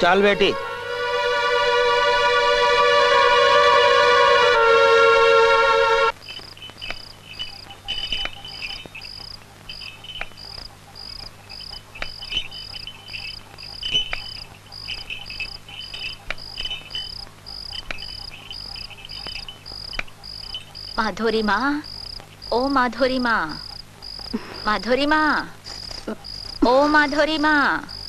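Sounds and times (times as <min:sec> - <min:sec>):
crickets chirping: 0:00.0 - 0:28.0
insect trills: 0:06.1 - 0:28.0.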